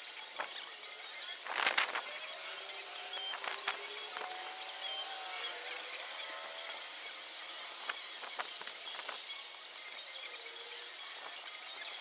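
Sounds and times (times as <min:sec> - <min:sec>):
steady hiss: 0:00.0 - 0:12.0
faint drifting hum: 0:00.8 - 0:09.5.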